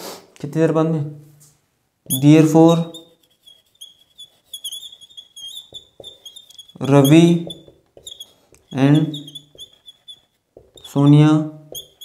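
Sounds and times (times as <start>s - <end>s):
whiteboard marker squeaking: 2.1s - 12.0s
marker tip tapping: 2.9s - 11.1s, 11.7s - 12.0s.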